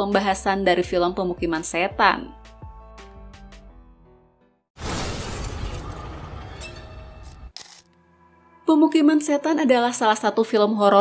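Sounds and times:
film trailer score: 0:01.4 - 0:11.0
cinematic impact crash: 0:04.8 - 0:07.2.

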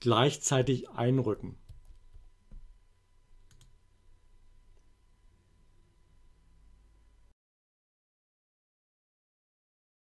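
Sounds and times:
faint low hum: 0:00.0 - 0:07.4
computer clicks: 0:03.4 - 0:03.8.

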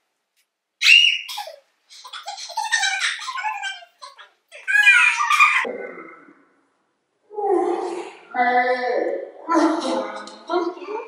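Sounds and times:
young women laughing and shrieking: 0:00.8 - 0:01.6, 0:04.6 - 0:05.7.

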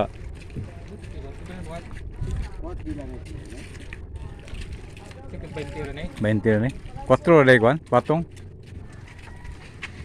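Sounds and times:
wind rumble on microphone: 0:00.0 - 0:07.2
faint voices talking: 0:00.0 - 0:09.7.

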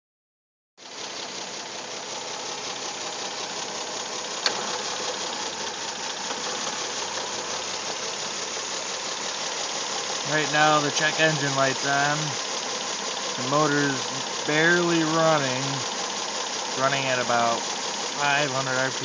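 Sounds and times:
car engine idling rough: 0:00.8 - 0:19.0.

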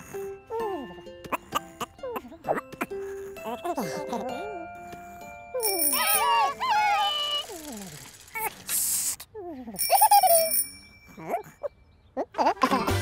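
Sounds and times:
light bell-like chime: 0:05.6 - 0:06.6, 0:09.8 - 0:12.0
squeaky cartoon vocal calls: 0:05.6 - 0:12.7.

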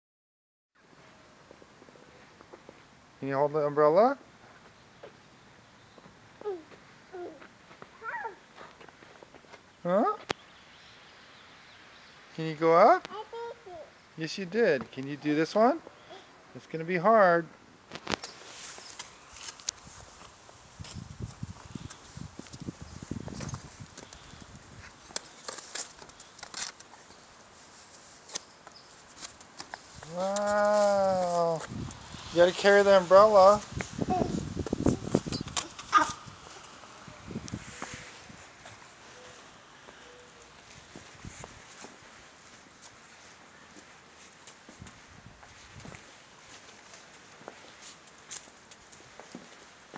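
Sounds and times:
small child's vocal sounds: 0:06.4 - 0:08.4, 0:13.0 - 0:14.0, 0:16.0 - 0:16.4, 0:34.0 - 0:36.8
umbrella rustling: 0:18.0 - 0:49.8.

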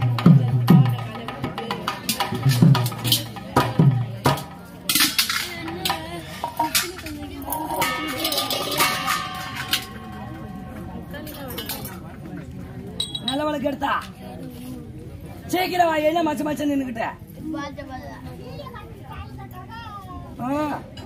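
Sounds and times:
metallic clinking: 0:04.9 - 0:12.0, 0:13.0 - 0:13.5.

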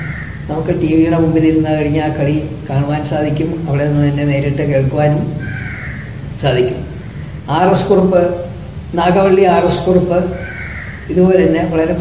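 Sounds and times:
crow cawing: 0:00.0 - 0:00.5, 0:05.4 - 0:07.5, 0:10.2 - 0:11.2
man speaking: 0:00.5 - 0:05.4, 0:06.4 - 0:10.5, 0:11.1 - 0:12.0.

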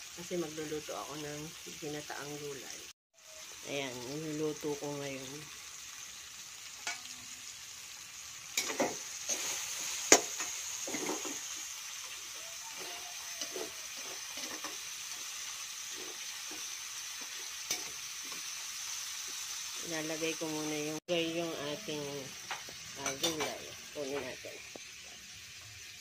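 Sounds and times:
vegetables sizzling in a wok: 0:00.0 - 0:26.0
metal spoon scraping a pan: 0:08.5 - 0:19.4, 0:21.7 - 0:25.3.

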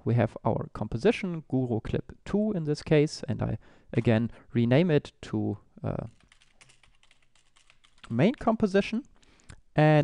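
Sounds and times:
typing on a keyboard: 0:06.0 - 0:08.6.

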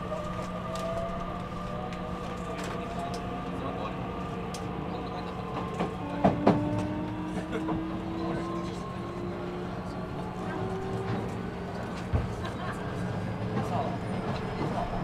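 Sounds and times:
rail noise: 0:00.0 - 0:15.0.

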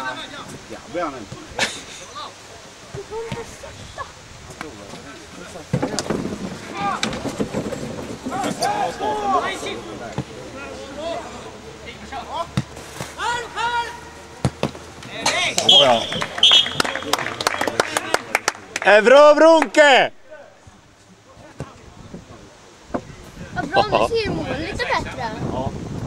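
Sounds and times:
players shouting: 0:08.2 - 0:20.4.

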